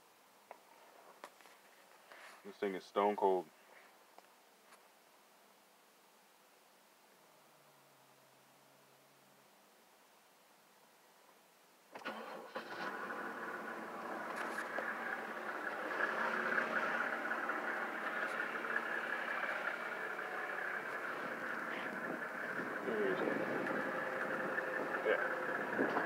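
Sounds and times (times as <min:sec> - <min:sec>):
diesel engine cranking and starting: 0:11.9 - 0:26.0
diesel engine idling: 0:12.0 - 0:26.0.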